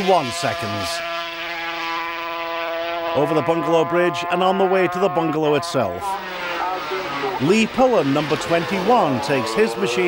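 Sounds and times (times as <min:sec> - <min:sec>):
motorcycle engine at high revs: 0:00.0 - 0:10.0.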